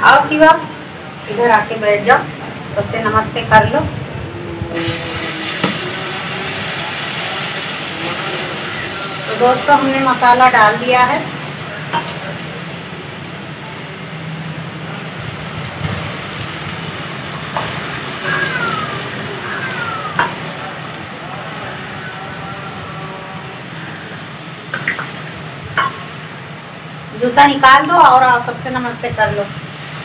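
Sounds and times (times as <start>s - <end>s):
onion sizzling in oil: 4.7s - 30.0s.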